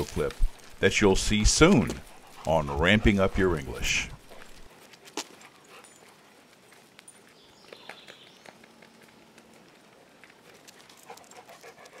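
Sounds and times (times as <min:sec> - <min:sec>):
paws scuffing on dirt: 0:00.0 - 0:12.0
dog panting quickly: 0:02.0 - 0:03.2, 0:10.4 - 0:12.0.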